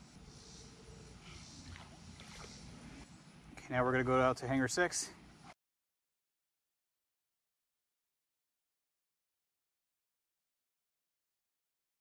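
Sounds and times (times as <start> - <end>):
faint outdoor background noise: 0.0 - 5.6.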